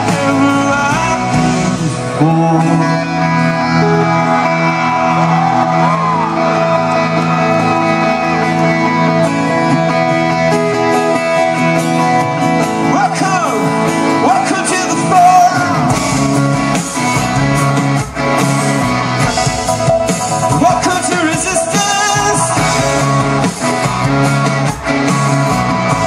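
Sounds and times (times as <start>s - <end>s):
person singing: 0.0s - 4.6s, 19.4s - 23.7s
bass and drums: 0.0s - 26.0s
electric guitars: 0.0s - 26.0s
live rock band: 0.0s - 26.0s.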